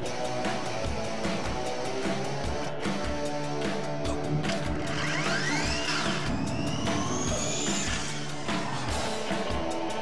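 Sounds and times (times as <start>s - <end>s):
electric motorcycle motor whine: 4.4s - 8.4s.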